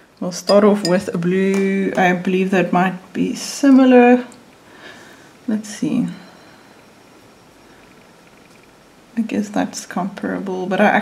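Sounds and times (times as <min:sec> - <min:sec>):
low steady hiss: 0:00.0 - 0:11.0
person speaking: 0:00.4 - 0:01.3.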